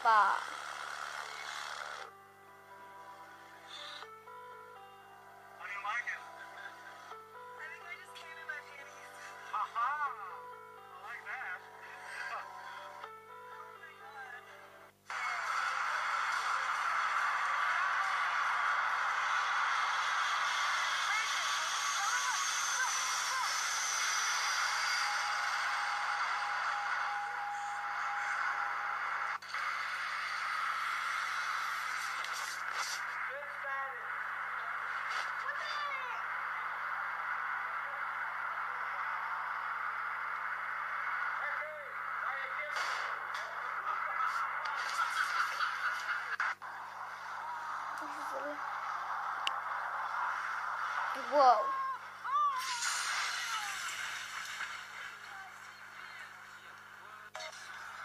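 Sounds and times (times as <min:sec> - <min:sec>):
voices from small speaker: 0:00.0 - 0:00.5.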